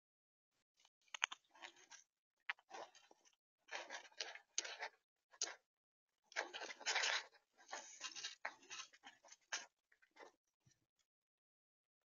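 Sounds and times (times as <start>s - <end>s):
squirrel crunching and rummaging nuts: 1.1s - 5.6s, 6.3s - 10.4s.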